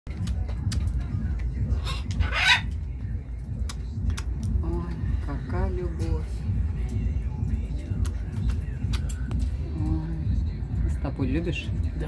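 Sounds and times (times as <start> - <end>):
cockatoo squawking: 1.7 - 2.8.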